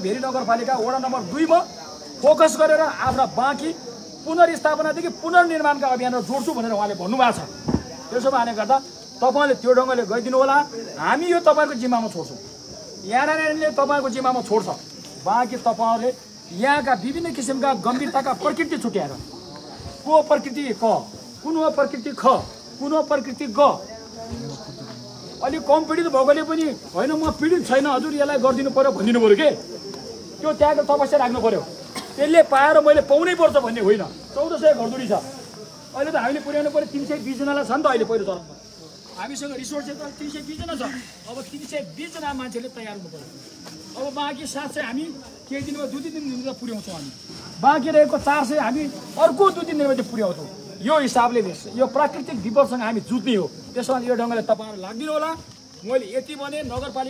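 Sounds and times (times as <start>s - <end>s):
man speaking to a crowd: 0.0s - 29.8s, 30.4s - 57.0s
high-pitched hiss: 0.0s - 57.0s.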